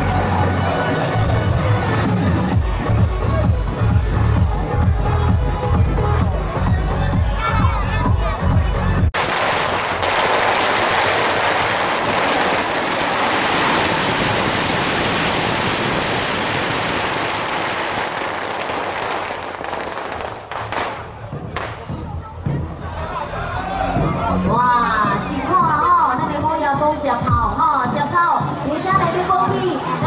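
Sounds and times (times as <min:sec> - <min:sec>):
music with heavy beat: 0:00.0 - 0:09.1
firecrackers crackling: 0:09.1 - 0:22.4.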